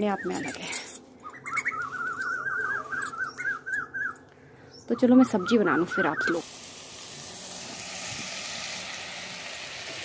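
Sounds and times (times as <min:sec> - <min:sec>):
bird warbling call: 0:00.0 - 0:06.4.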